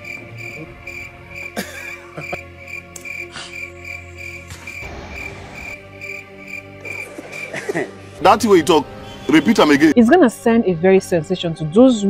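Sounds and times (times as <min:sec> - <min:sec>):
crickets chirping: 0:00.0 - 0:07.5
faint music tones: 0:00.0 - 0:12.0.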